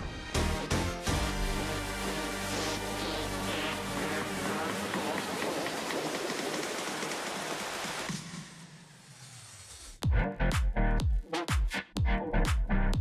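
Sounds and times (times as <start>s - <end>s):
electronic background music: 0.0s - 8.6s, 10.0s - 13.0s.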